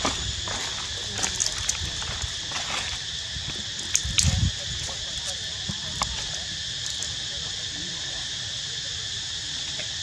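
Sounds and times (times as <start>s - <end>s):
insects droning: 0.0s - 10.0s.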